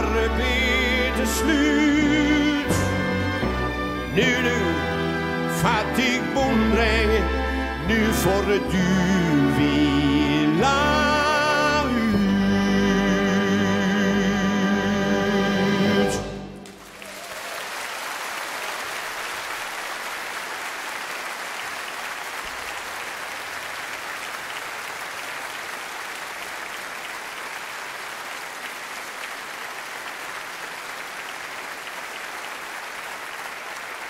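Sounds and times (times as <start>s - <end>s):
audience applauding: 16.5s - 34.0s.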